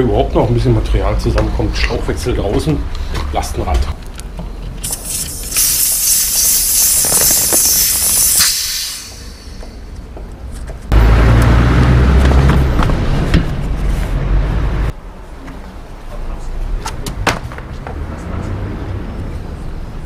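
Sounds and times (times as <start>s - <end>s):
air hissing from tyre valve: 4.8s - 10.0s.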